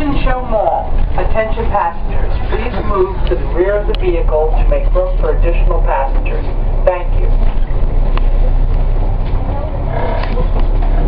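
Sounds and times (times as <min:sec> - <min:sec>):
bus engine rumble: 0:00.0 - 0:11.0
road noise: 0:00.0 - 0:11.0.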